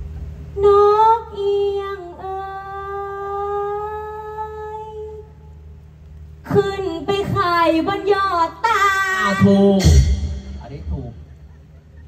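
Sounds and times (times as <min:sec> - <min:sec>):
woman singing: 0:00.6 - 0:05.2, 0:06.5 - 0:09.5.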